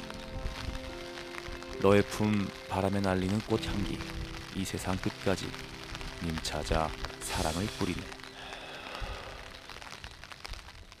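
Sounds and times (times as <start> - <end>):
rain pattering: 0.0 - 11.0.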